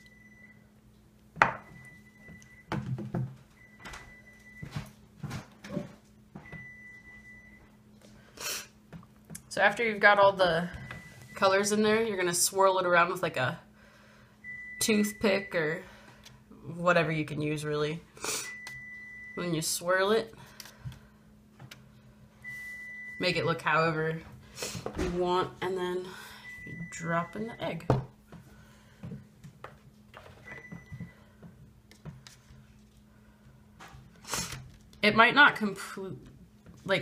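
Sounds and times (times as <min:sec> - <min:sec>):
faint steady hum: 0:00.0 - 0:37.0.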